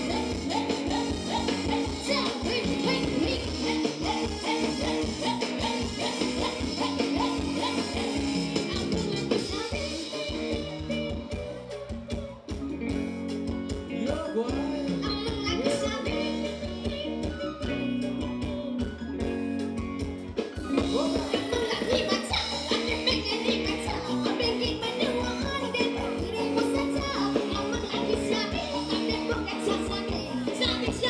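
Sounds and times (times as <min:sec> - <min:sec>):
person singing: 0:00.0 - 0:12.7, 0:13.8 - 0:19.1, 0:20.8 - 0:31.0
live band dance music: 0:00.0 - 0:31.0.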